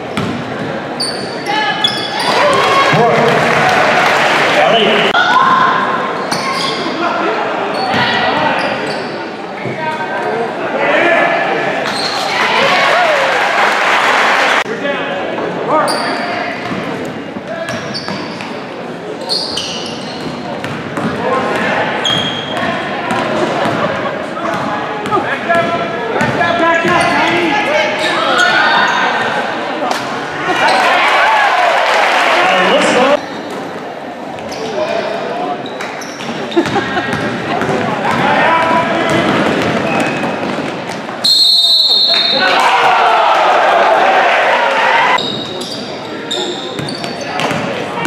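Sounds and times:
sneakers squeaking on hardwood: 0.0 - 2.6, 17.6 - 18.6, 19.2 - 21.2, 22.0 - 22.7, 45.2 - 47.8
sneakers squeaking on court: 0.0 - 2.7, 6.2 - 7.0, 7.7 - 9.8, 17.6 - 21.2, 22.0 - 23.8, 26.2 - 27.4, 34.3 - 38.2, 39.0 - 40.8, 45.2 - 47.8
loud crowd noise: 0.0 - 48.0
voices of spectators and players: 0.0 - 48.0
basketball bouncing: 0.1 - 0.4, 36.6 - 40.7, 46.8 - 47.7.

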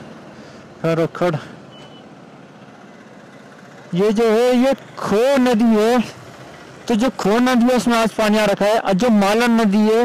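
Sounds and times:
road traffic noise: 0.0 - 10.0
brief high beep: 1.7 - 2.1.

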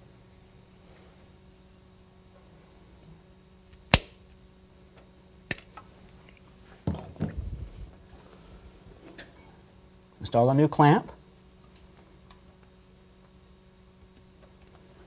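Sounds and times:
sharp click: 3.8 - 4.2
rubber hose rustling and knocking: 6.8 - 8.0.

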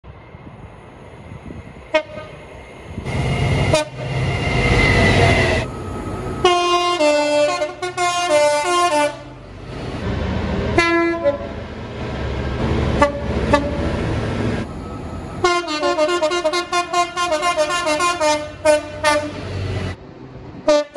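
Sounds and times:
locomotive engine rumble: 0.1 - 20.6
locomotive horns: 1.9 - 2.4, 3.7 - 4.1, 6.4 - 9.5, 10.7 - 11.6, 13.0 - 13.9, 15.4 - 19.6.

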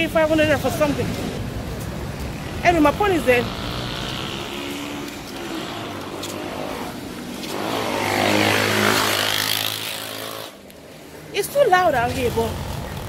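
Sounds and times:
road traffic: 0.0 - 13.0
vehicle engine passing close: 1.4 - 10.6.

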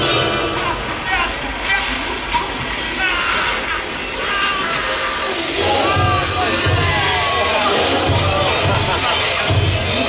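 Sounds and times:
water churning and spraying: 0.0 - 10.0.

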